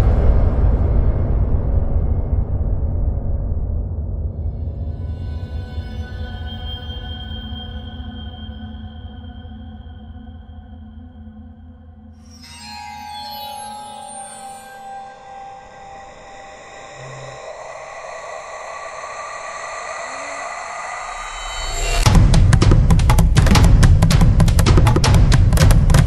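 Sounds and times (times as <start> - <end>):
ambient synth music: 3.6 - 26.0
falling synth sweep: 14.2 - 22.1.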